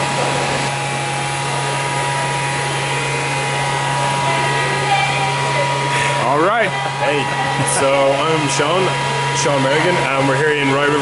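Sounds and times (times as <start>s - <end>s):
faint steady whines: 0.0s - 11.0s
low machinery hum: 0.0s - 11.0s.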